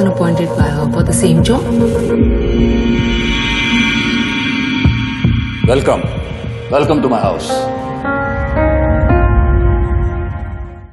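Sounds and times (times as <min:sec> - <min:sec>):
electronic drone: 0:00.0 - 0:10.9.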